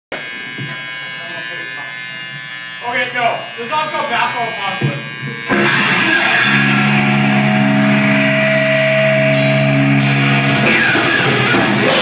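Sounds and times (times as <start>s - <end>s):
guitar amplifier electric buzz: 0.1s - 12.0s.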